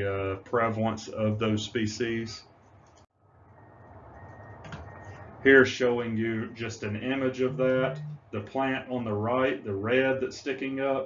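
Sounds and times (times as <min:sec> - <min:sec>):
thin steady high tone: 0:03.5 - 0:08.2
low hum and hiss: 0:04.1 - 0:11.0.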